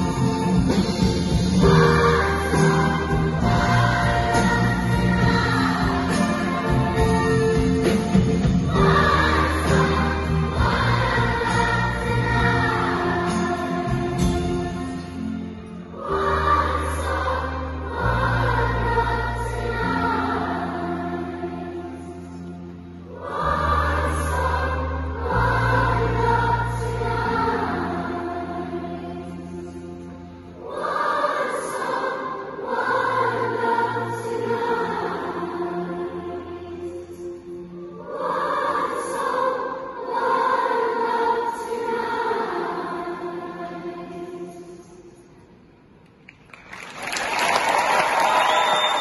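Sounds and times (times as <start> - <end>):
orchestra playing: 0.0 - 24.7
instrumental accompaniment: 0.0 - 36.4
school choir singing: 0.0 - 45.2.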